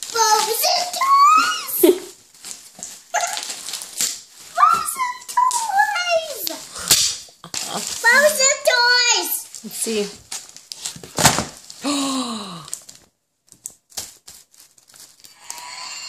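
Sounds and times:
gift-wrap paper crinkling: 0.0s - 16.0s
child squealing excitedly: 0.2s - 2.1s, 3.1s - 3.5s, 4.6s - 6.7s.

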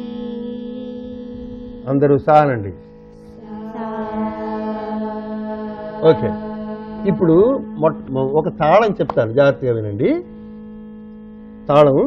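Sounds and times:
steady drone note: 0.0s - 12.0s
voice gliding downward: 3.4s - 9.2s.

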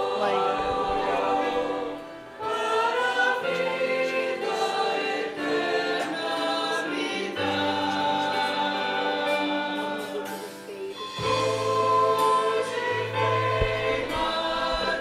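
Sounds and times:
group singing worship song: 0.0s - 15.0s
violins: 0.0s - 15.0s.

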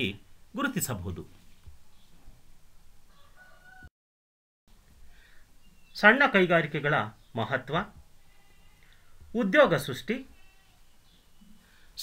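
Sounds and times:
faint distant animal call: 3.1s - 3.9s, 8.2s - 9.3s, 10.2s - 12.0s
faint room noise: 4.7s - 12.0s.

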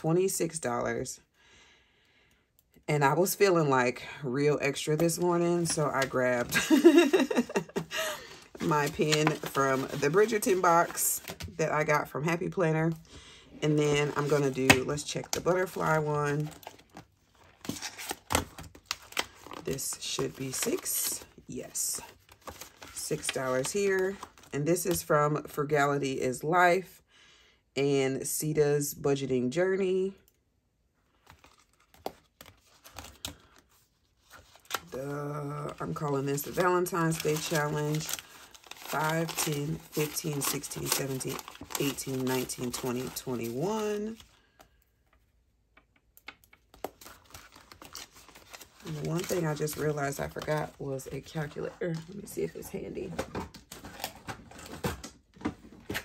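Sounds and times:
woman speaking: 0.0s - 1.2s, 2.9s - 16.6s, 19.6s - 22.1s, 23.0s - 27.0s, 27.8s - 30.2s, 34.9s - 38.2s, 38.8s - 44.2s, 48.8s - 53.4s
paper and plastic rustling: 5.0s - 11.6s, 13.9s - 21.3s, 35.6s - 44.4s, 46.8s - 56.0s.

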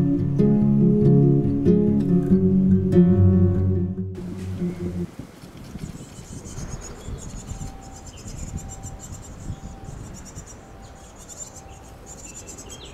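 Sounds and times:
low rumble: 1.2s - 5.3s.

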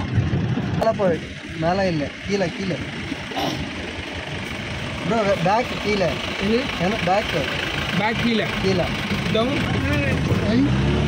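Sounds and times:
jeep engine rumbling: 0.0s - 11.0s.

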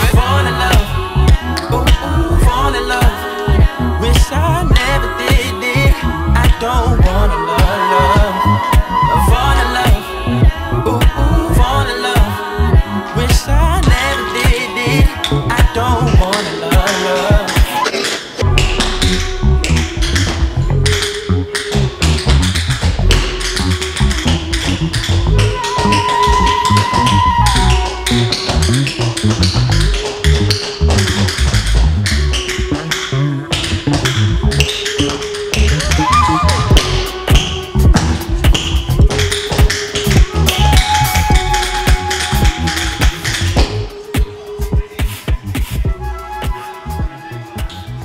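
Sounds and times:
hip-hop beat with bass: 0.0s - 48.0s
held synth tone: 17.7s - 28.8s, 35.4s - 39.2s.

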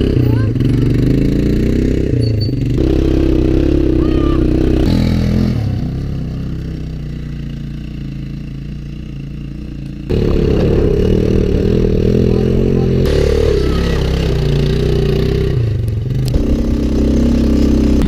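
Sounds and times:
quad bike engine revving: 0.0s - 18.0s.

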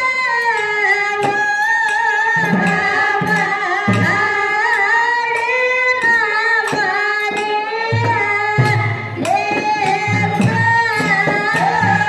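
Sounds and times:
hand cymbals struck: 0.0s - 12.0s.

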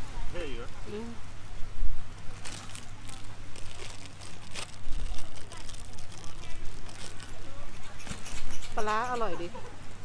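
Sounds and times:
steady low hum: 0.0s - 10.0s
woman speaking: 0.8s - 1.2s, 4.9s - 7.9s, 8.8s - 9.7s.

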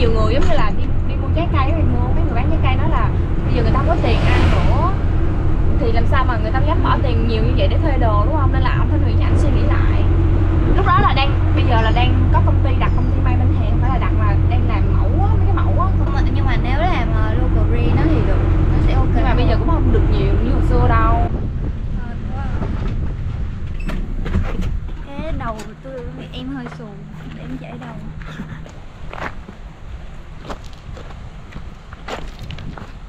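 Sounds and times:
people in conversation: 0.0s - 29.6s
wind and road noise rumble: 0.0s - 33.0s.

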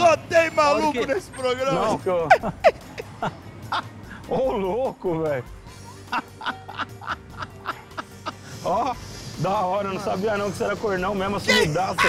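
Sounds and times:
comedic background music: 0.0s - 12.0s.

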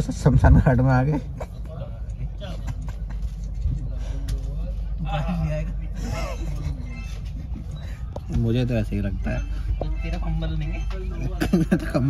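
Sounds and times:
train coach rumble: 0.0s - 12.0s.

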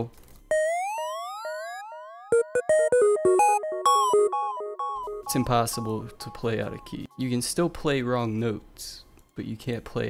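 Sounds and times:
synthesizer lead notes: 0.5s - 7.1s.

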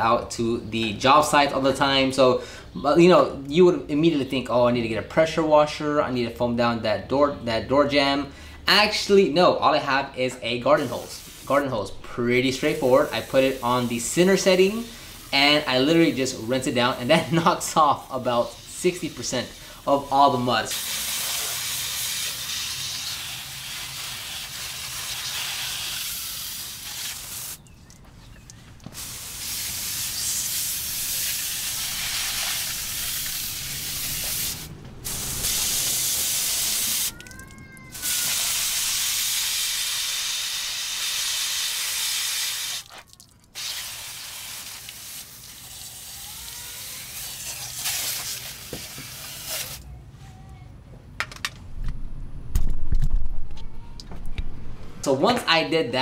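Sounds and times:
hose spray hissing: 10.8s - 11.7s, 12.4s - 27.6s, 28.9s - 37.2s, 37.9s - 43.0s, 43.6s - 49.8s.

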